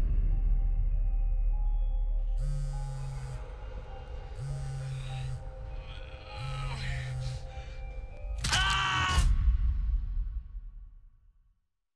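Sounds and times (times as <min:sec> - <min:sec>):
low rumble: 0:00.0 - 0:08.2
faint eerie drone: 0:00.0 - 0:09.1
phone vibrating on tiled floor: 0:02.4 - 0:03.4, 0:04.4 - 0:05.4.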